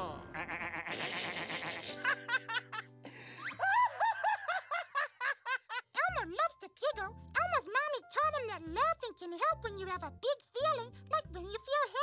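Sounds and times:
cartoonish laughter: 0.3 - 5.9.

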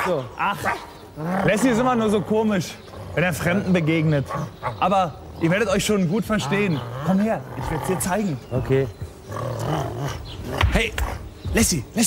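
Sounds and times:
dog growling: 1.1 - 11.3.

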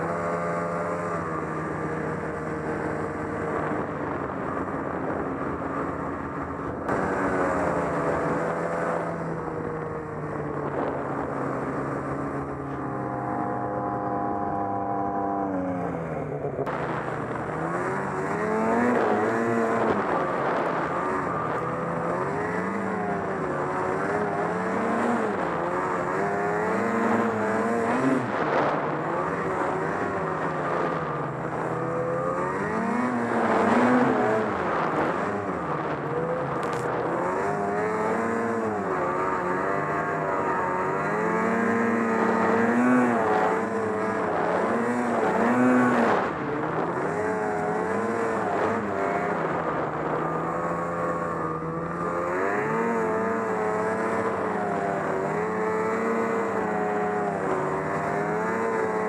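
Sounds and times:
snowmobile engine revving: 0.0 - 59.0.

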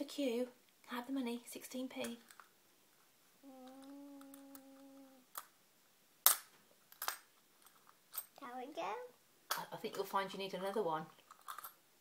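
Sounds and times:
person humming a steady note: 3.4 - 5.2.

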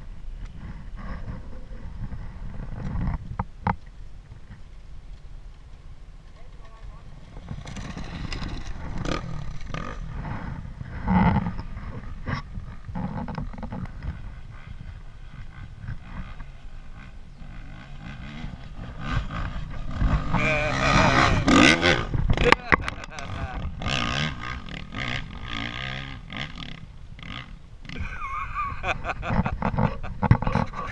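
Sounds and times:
dirt bike engine rumbling: 0.0 - 30.9.

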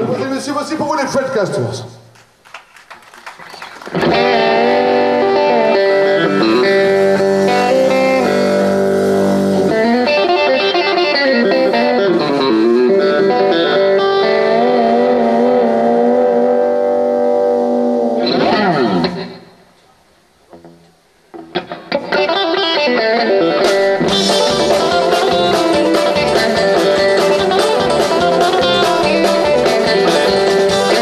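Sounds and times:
distorted electric guitar: 3.8 - 31.0.

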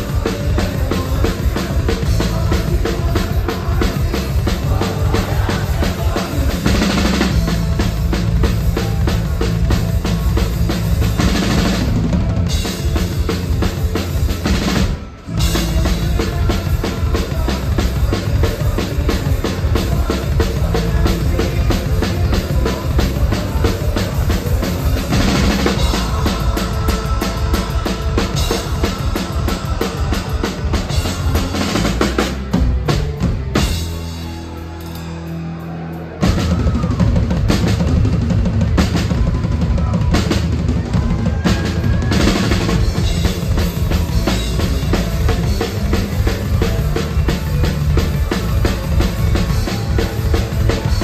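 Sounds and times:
fast drumming: 0.0 - 34.6, 35.4 - 51.0
punk rock band playing live: 0.0 - 51.0.

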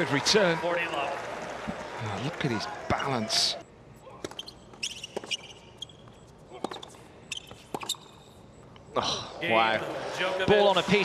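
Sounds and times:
tennis ball bouncing: 4.2 - 8.1
shoe squeaks on court: 4.2 - 8.4.

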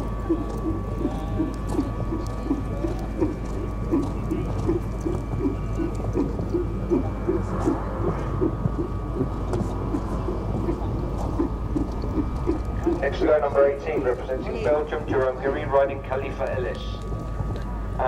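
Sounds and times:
low hum: 0.0 - 18.0.

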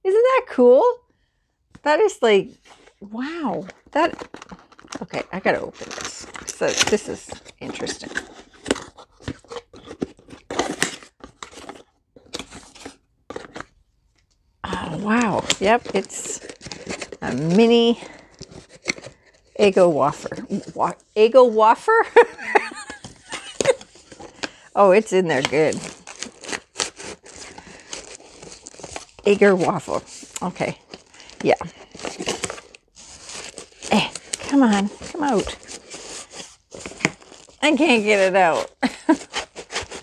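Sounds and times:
packaging rustling and scraping: 2.5 - 40.0
cardboard tearing and crinkling: 2.6 - 13.8, 14.7 - 20.8, 22.1 - 24.6, 25.2 - 40.0.

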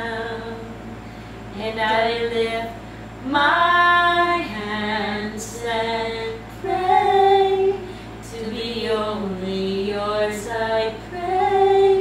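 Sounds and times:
women singing unaccompanied: 0.0 - 12.0.

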